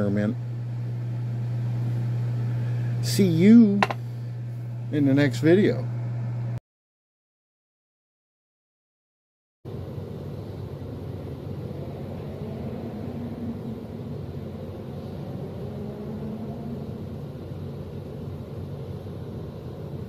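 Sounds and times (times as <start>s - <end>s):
faint hum: 0.0s - 6.6s, 9.7s - 20.0s
low rumble: 11.1s - 19.8s.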